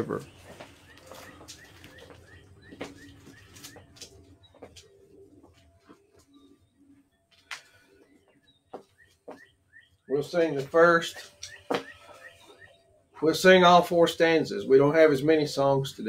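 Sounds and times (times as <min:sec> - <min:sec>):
songbirds chirping: 0:00.0 - 0:16.0.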